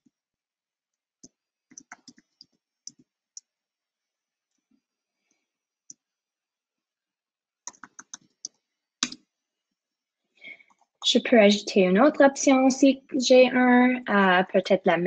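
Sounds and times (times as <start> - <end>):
faint keyboard typing: 1.2 - 3.5, 7.6 - 9.2.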